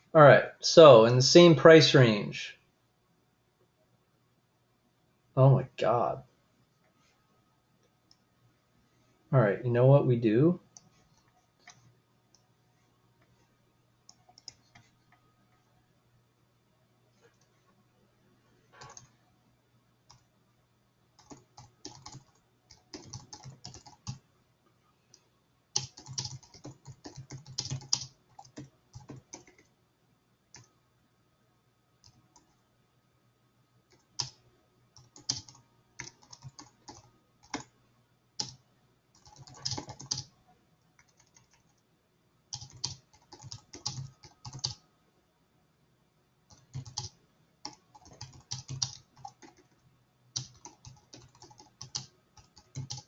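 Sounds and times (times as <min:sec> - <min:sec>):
faint low hum: 0:00.0 - 0:53.0
typing on computer keyboard: 0:14.1 - 0:15.2, 0:18.8 - 0:19.1, 0:21.2 - 0:24.2, 0:25.8 - 0:29.7, 0:30.5 - 0:30.7, 0:33.9 - 0:34.4, 0:35.0 - 0:37.7, 0:38.4 - 0:38.6, 0:39.2 - 0:40.3, 0:41.0 - 0:41.8, 0:42.5 - 0:44.8, 0:46.5 - 0:49.8, 0:50.4 - 0:53.0.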